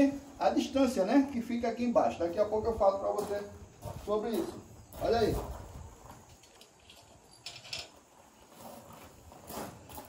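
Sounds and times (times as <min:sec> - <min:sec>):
footsteps on gravel: 0:02.1 - 0:06.8, 0:08.1 - 0:10.0.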